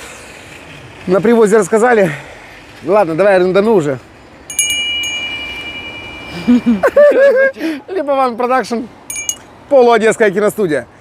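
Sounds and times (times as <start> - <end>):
small brass bell ringing: 4.5 - 6.8, 9.1 - 9.5.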